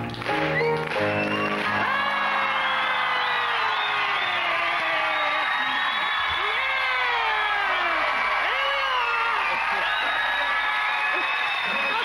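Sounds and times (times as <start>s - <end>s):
audience clapping and cheering: 0.0s - 12.0s.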